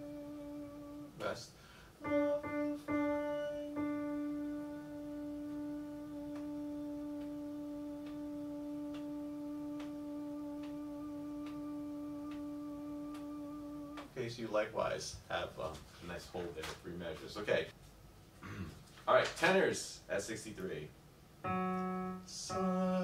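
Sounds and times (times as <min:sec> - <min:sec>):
faint light ticks: 0:09.8 - 0:10.0, 0:11.4 - 0:11.6.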